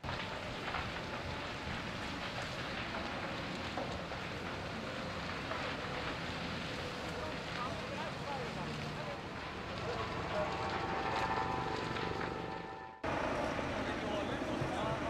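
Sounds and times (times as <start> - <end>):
building fire rushing: 0.0 - 15.0
faint voices: 6.8 - 12.5, 13.1 - 15.0.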